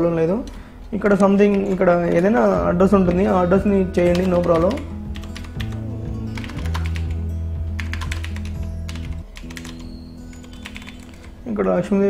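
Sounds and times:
person speaking: 0.0 - 5.0
background music with low notes: 0.0 - 12.0
computer keyboard typing: 0.4 - 7.2, 7.8 - 11.4.

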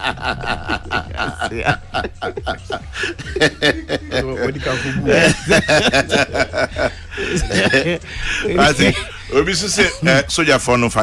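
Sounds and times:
man laughing: 0.0 - 10.3.

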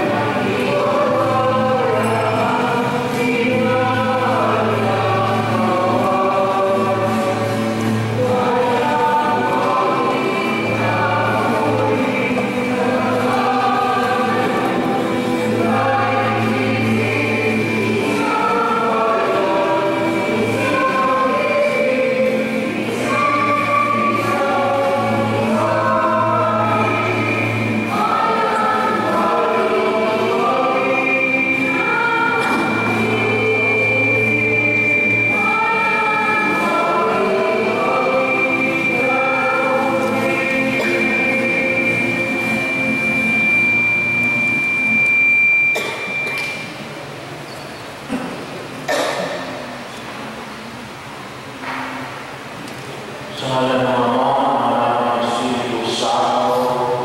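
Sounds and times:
choir singing a hymn: 0.0 - 46.7, 53.2 - 57.0.

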